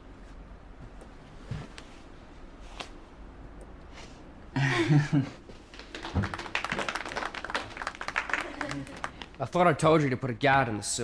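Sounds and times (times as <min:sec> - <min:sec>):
people clapping: 0:05.5 - 0:09.6.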